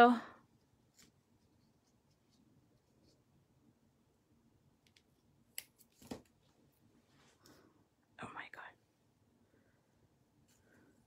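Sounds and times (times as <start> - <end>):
glue roll and card rustling: 0.6 - 3.3
soft whisper: 7.1 - 9.8.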